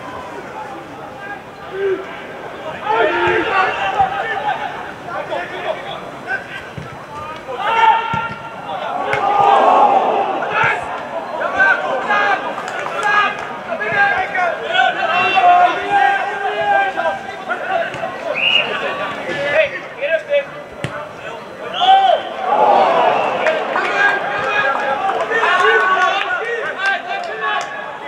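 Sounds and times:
players shouting: 0.0s - 28.0s
ball being kicked: 8.1s - 8.4s.

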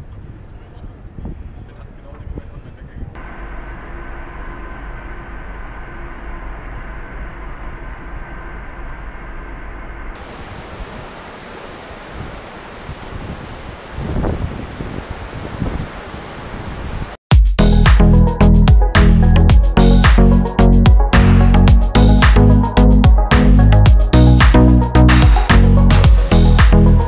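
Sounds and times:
wind buffeting microphone: 0.0s - 3.2s, 10.2s - 17.2s
steady hum with held tones: 3.2s - 14.1s.

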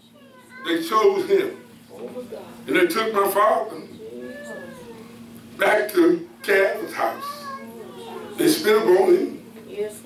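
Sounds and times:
man preaching: 0.6s - 1.6s, 2.7s - 4.0s, 5.6s - 7.6s, 8.4s - 9.4s.

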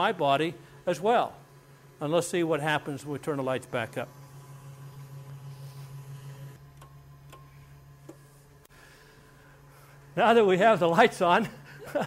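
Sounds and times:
generator low hum: 0.0s - 12.0s.

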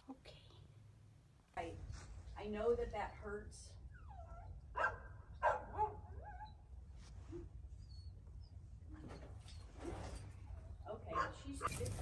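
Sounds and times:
dog yelping and whining: 3.9s - 6.6s.

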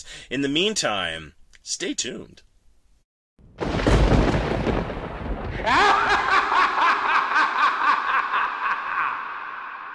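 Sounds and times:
low thunder rumble: 3.4s - 6.2s
horror-style laugh: 5.6s - 9.9s.

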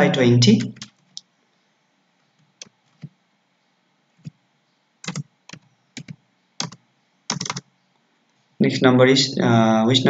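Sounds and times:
computer keyboard keystrokes: 0.6s - 1.0s, 5.0s - 7.7s.

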